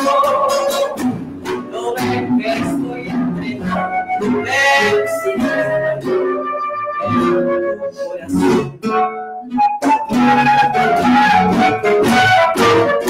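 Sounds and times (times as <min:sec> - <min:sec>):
acoustic guitars plucking and strumming: 0:00.0 - 0:13.0
flute melody: 0:00.0 - 0:13.0.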